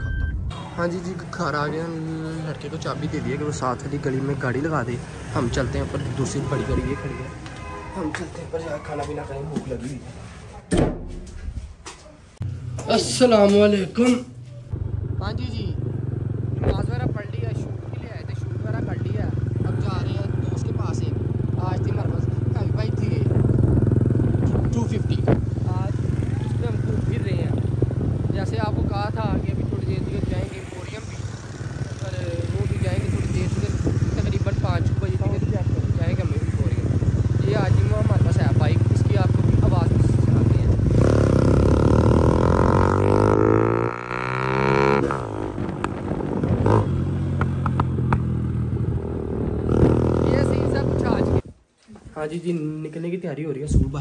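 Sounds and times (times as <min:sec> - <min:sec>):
motorcycle engine running: 0:14.8 - 0:51.4.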